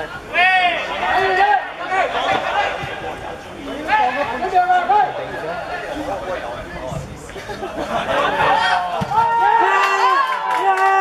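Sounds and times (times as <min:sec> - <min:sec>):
men shouting and calling out: 0:00.2 - 0:06.1, 0:08.0 - 0:11.0.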